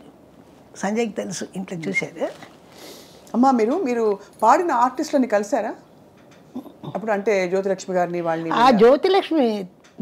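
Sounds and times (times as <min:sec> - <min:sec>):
woman speaking: 0:00.8 - 0:02.5, 0:03.3 - 0:05.9, 0:06.6 - 0:09.8.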